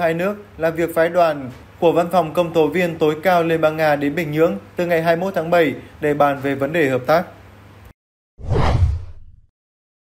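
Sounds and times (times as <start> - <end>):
whoosh transition effect: 8.4 - 9.5.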